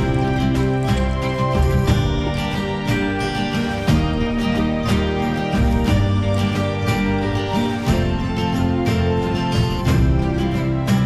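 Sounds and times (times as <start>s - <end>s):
background music sustained notes: 0.0s - 11.0s.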